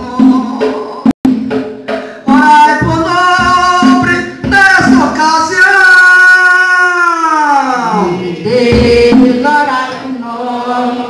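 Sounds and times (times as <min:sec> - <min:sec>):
person singing through pa: 0:00.0 - 0:11.0.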